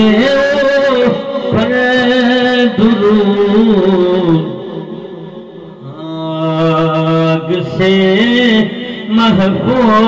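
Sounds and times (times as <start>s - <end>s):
man singing long notes: 0.0s - 10.0s.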